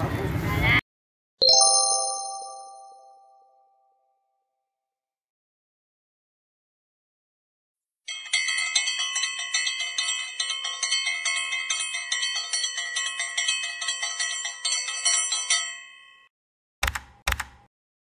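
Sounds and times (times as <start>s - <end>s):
small bell ringing rapidly: 8.1s - 16.3s.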